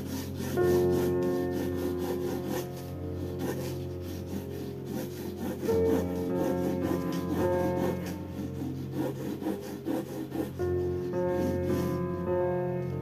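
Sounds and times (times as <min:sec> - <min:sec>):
pencil scratching on paper: 0:00.0 - 0:12.3
background music of sustained chords: 0:00.0 - 0:13.0.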